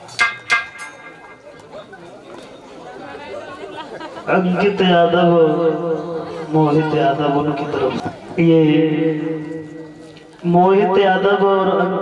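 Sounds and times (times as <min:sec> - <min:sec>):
faint chatter of people: 0:00.0 - 0:12.0.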